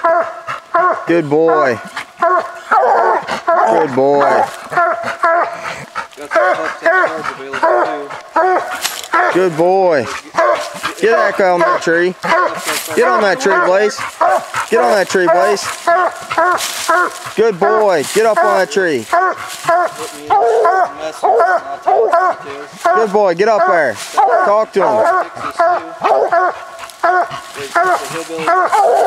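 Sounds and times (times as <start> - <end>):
dog barking: 0.0 - 29.0.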